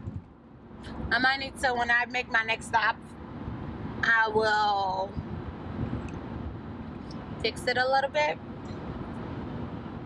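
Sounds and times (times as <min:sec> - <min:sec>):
car cabin road noise: 0:00.0 - 0:10.0.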